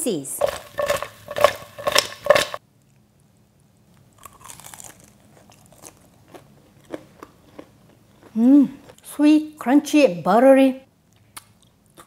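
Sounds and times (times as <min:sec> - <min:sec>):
chicken scraping in a pan: 0:00.4 - 0:02.6
crunching of fried chicken: 0:03.9 - 0:09.0.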